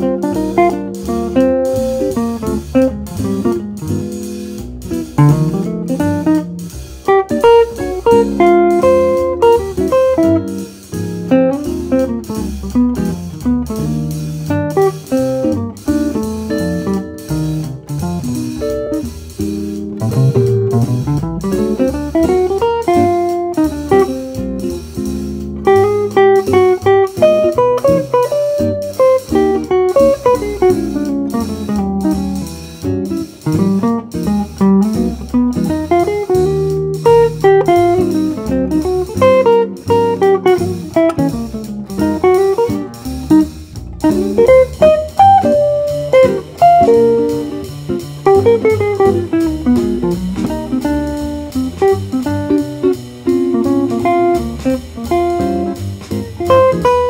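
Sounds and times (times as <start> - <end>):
backing track with bass: 0.0 - 57.0
electric jazz guitar solo: 0.0 - 57.0.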